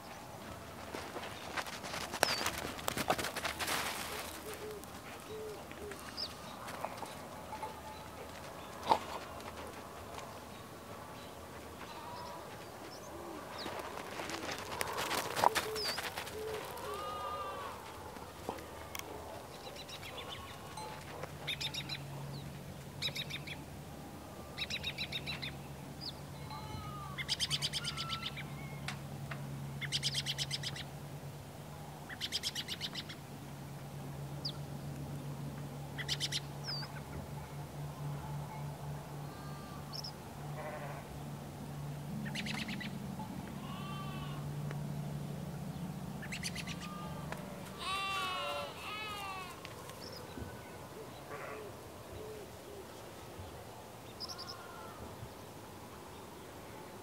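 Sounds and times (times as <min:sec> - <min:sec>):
pitched animal calls: 0:14.8 - 0:17.8, 0:46.3 - 0:49.6.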